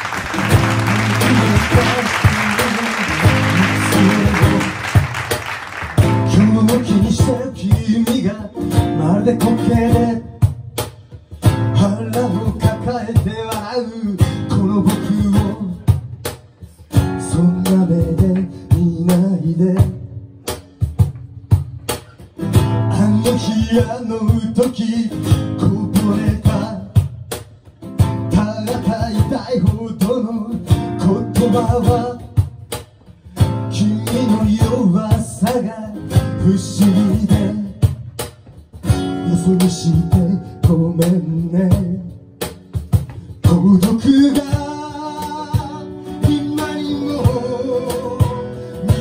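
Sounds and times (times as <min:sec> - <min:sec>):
acoustic guitar strumming: 0:00.0 - 0:10.6, 0:27.8 - 0:49.0
cajon beat: 0:00.0 - 0:49.0
man singing: 0:00.3 - 0:05.1, 0:06.0 - 0:10.6, 0:11.5 - 0:16.0, 0:17.0 - 0:20.2, 0:22.8 - 0:27.1, 0:28.1 - 0:32.5, 0:33.4 - 0:38.0, 0:39.0 - 0:42.3, 0:43.2 - 0:49.0.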